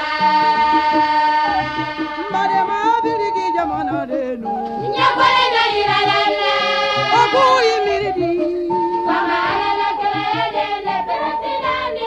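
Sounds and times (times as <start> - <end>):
repeating bass pulse: 0.0 - 10.6
instrumental accompaniment: 0.0 - 12.0
woman singing: 2.2 - 5.2, 7.1 - 8.6.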